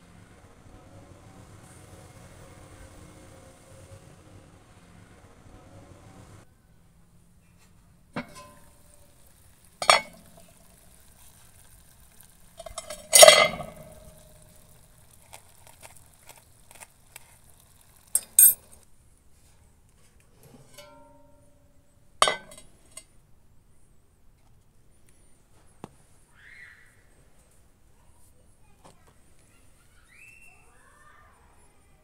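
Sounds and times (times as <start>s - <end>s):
metal pot and lid clanking: 8.2s - 11.0s, 12.5s - 14.4s, 18.1s - 18.7s, 20.6s - 21.4s, 22.2s - 23.0s.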